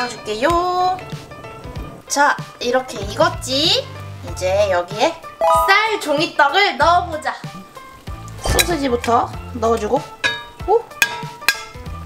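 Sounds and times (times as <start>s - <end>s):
sauce simmering: 1.0s - 2.6s, 7.6s - 8.4s
metal tongs clinking on pan: 10.2s - 11.8s.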